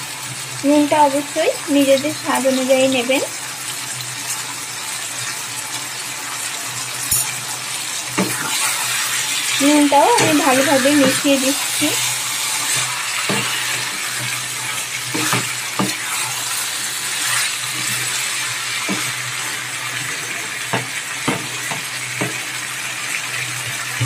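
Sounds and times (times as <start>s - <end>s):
food sizzling in a wok: 0.0s - 24.0s
spatula scraping the pan: 8.1s - 22.4s.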